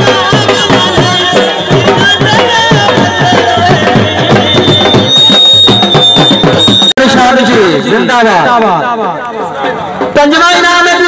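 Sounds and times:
barrel drum beaten with sticks: 0.0s - 6.9s.

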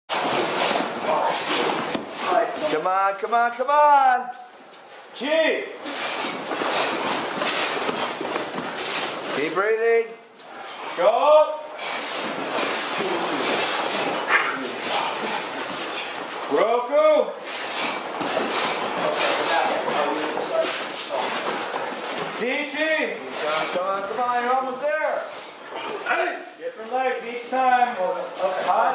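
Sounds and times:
uniforms snapping and rustling: 0.1s - 2.9s, 5.8s - 9.8s, 11.8s - 16.7s, 17.4s - 24.8s
bare feet on mats: 0.1s - 3.2s, 5.8s - 9.8s, 10.4s - 16.7s, 17.4s - 22.5s.

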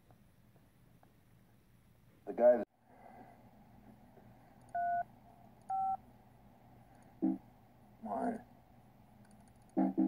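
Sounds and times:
telephone keypad beeps: 4.8s - 5.0s, 5.7s - 6.0s.

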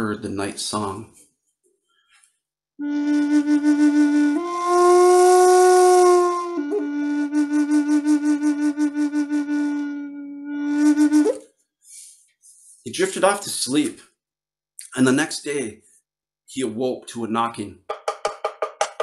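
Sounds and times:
wooden flute playing: 2.8s - 11.6s.

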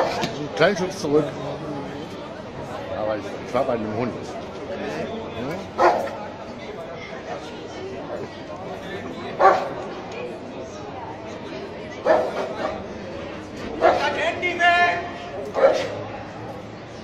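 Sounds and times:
murmur of people talking: 0.0s - 17.0s
dog barking: 5.8s - 6.2s, 9.4s - 9.7s, 12.0s - 12.6s, 13.8s - 14.1s, 15.6s - 16.0s.

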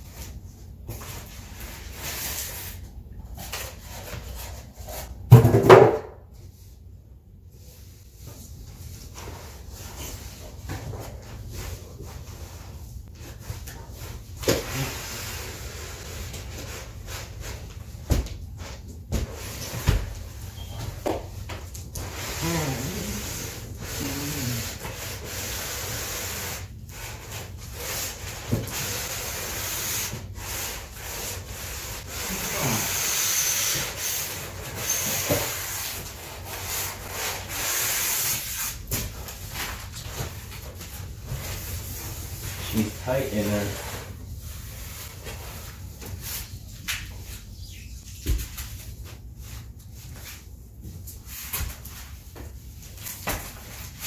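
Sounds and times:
cardboard rubbing and scraping: 22.0s - 46.6s.

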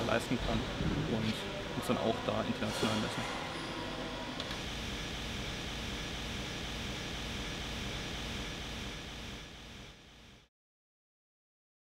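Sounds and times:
workshop machinery humming: 0.0s - 10.5s.

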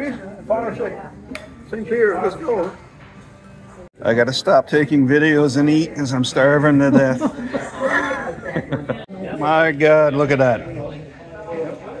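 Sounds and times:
men talking: 1.7s - 2.8s, 4.0s - 12.0s.

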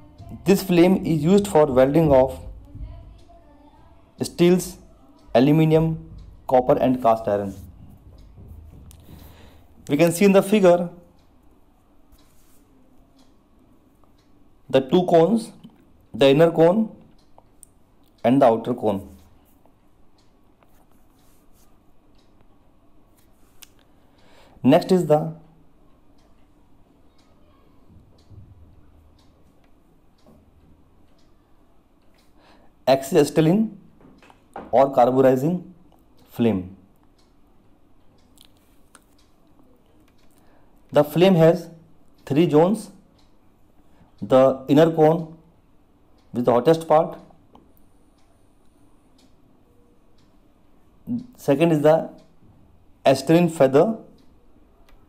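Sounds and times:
soft clicks: 1.4s - 24.3s, 25.2s - 32.4s, 33.0s - 52.6s, 53.2s - 55.0s.

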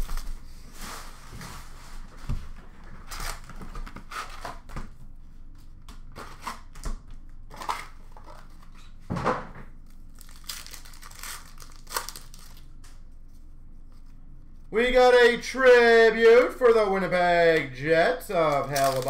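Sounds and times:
foil wrappers crinkling and tearing: 3.0s - 4.6s, 9.8s - 13.0s, 18.5s - 19.0s.

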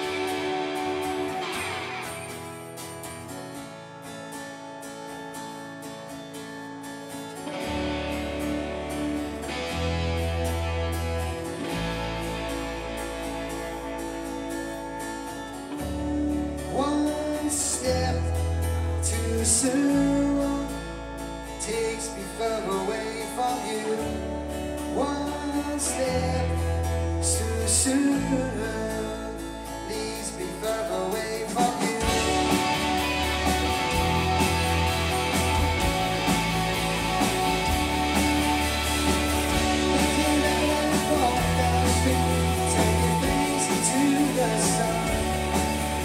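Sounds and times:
rock band playing: 0.0s - 3.7s, 7.4s - 17.4s, 30.9s - 46.0s
lead vocal singing: 27.3s - 33.1s, 39.6s - 46.0s.

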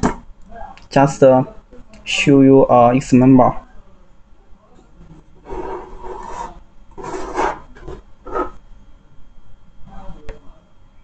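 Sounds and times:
hands rubbing circuit board: 5.4s - 8.6s.

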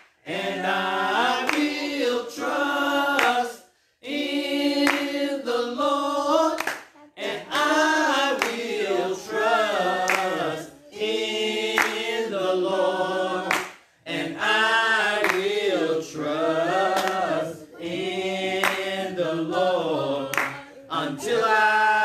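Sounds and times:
sharp clap-like hits: 0.0s - 0.2s, 3.1s - 3.4s, 4.8s - 5.1s, 6.6s - 7.0s, 8.3s - 8.7s, 10.1s - 10.4s, 11.8s - 12.1s, 13.5s - 13.9s, 15.2s - 15.5s, 16.9s - 17.3s
slow unaccompanied singing: 0.0s - 22.0s.

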